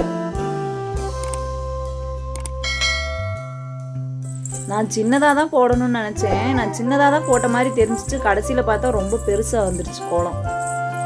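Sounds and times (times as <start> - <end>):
low bass: 0.9 - 4.8
bell-like notes: 2.6 - 5.5.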